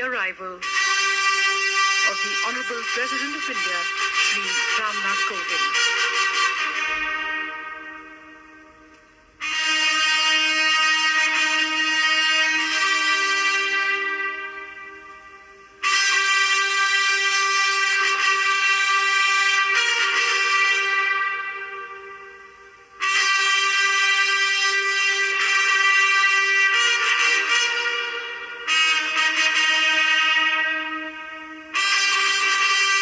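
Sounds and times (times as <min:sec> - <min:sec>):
trumpet fanfare: 0:00.0 - 0:33.0.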